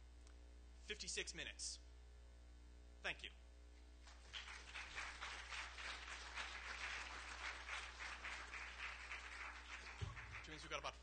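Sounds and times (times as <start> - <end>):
steady low hum: 0.0 - 11.0
audience applauding: 4.1 - 11.0.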